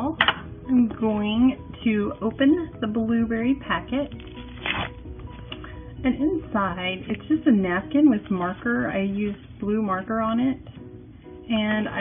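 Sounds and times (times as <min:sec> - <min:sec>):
faint background music: 0:00.0 - 0:12.0
paper packet tearing: 0:04.0 - 0:05.0.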